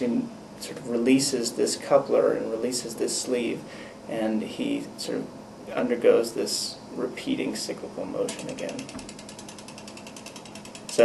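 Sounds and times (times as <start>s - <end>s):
woodpecker toy clicking on wire: 8.3s - 11.0s.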